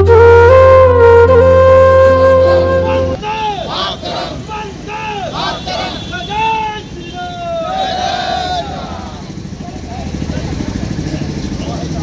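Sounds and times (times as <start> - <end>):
men shouting slogans: 2.8 - 9.4
street babble: 2.8 - 12.0
engine running: 7.6 - 12.0.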